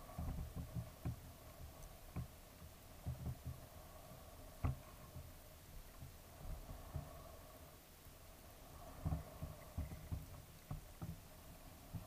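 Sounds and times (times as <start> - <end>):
dull underwater water thumps: 3.0 - 3.7, 9.0 - 11.3.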